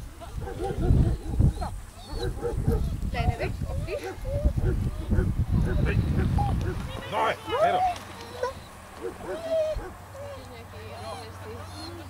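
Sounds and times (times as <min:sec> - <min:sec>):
dog whining: 0:00.4 - 0:12.0
people's voices: 0:03.1 - 0:12.0.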